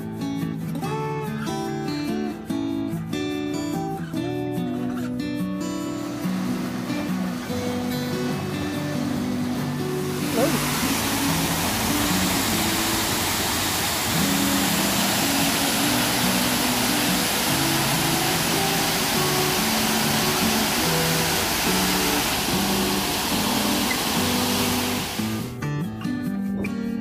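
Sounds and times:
slow melodic background music: 0:00.0 - 0:27.0
waterfall rushing over rocks: 0:06.0 - 0:25.5.

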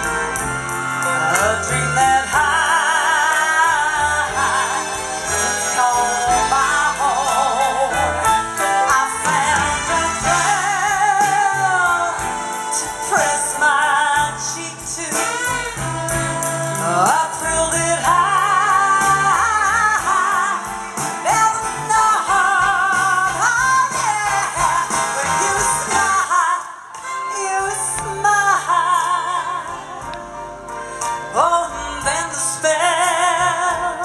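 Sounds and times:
live jazz band music: 0:00.0 - 0:34.0
woman singing into a microphone: 0:01.2 - 0:30.2, 0:31.3 - 0:34.0.

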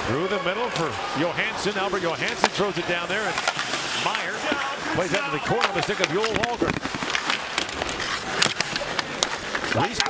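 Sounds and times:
arena crowd haze: 0:00.0 - 0:10.0
skates scraping ice: 0:00.1 - 0:10.0
hockey sticks clacking: 0:00.5 - 0:10.0.

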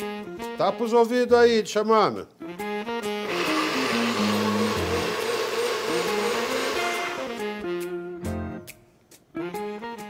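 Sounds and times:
blender motor whirring: 0:03.2 - 0:07.5.

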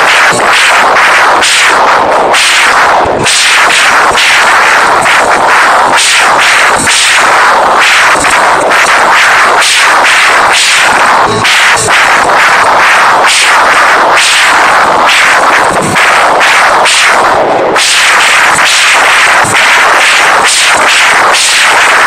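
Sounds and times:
drum hits: 0:02.3 - 0:19.8.

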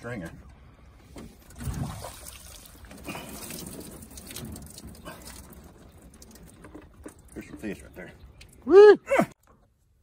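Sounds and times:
water splashing and dripping: 0:01.0 - 0:08.8.

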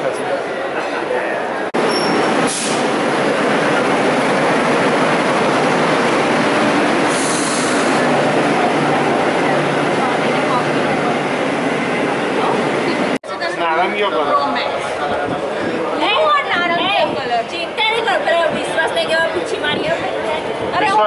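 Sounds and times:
metro train noise: 0:00.0 - 0:21.0
brief high hiss: 0:02.4 - 0:02.9, 0:07.1 - 0:08.0.

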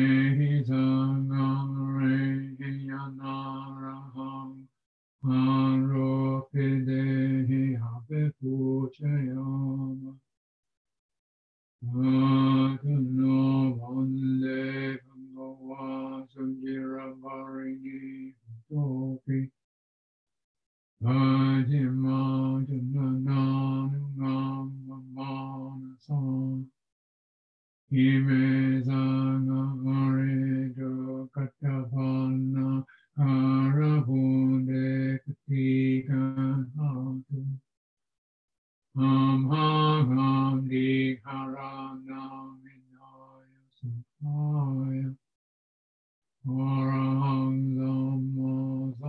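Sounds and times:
man chanting in low voice: 0:00.0 - 0:10.2, 0:11.8 - 0:19.6, 0:21.0 - 0:26.8, 0:27.9 - 0:37.6, 0:39.0 - 0:45.2, 0:46.4 - 0:49.0.

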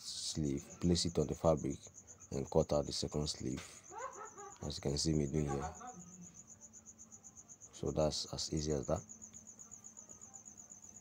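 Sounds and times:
cricket chirping: 0:00.0 - 0:11.0
person speaking: 0:04.7 - 0:06.0.

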